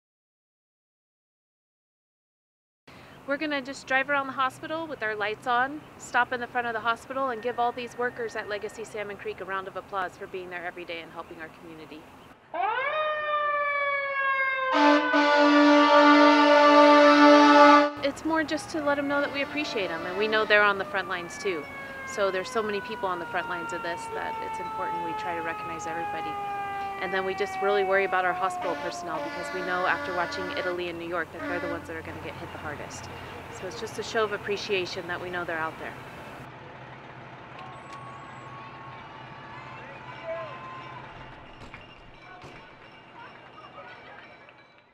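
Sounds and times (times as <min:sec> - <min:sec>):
street noise: 0:02.9 - 0:12.7, 0:14.7 - 0:44.9
fire siren winding: 0:12.6 - 0:15.5, 0:18.8 - 0:30.6
air horn blast: 0:14.6 - 0:18.1, 0:19.0 - 0:21.0, 0:26.7 - 0:32.1
truck engines idling: 0:15.3 - 0:44.5.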